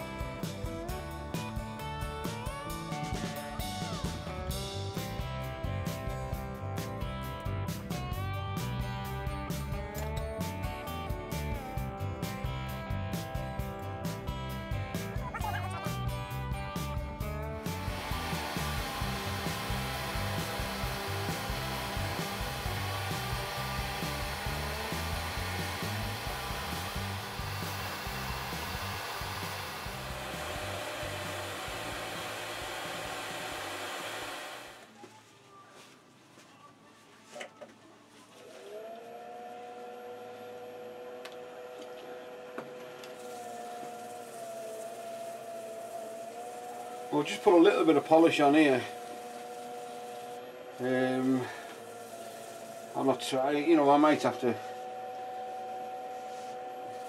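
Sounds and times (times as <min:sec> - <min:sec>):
wood lathe whirring: 0:17.2 - 0:34.9, 0:38.4 - 0:57.0.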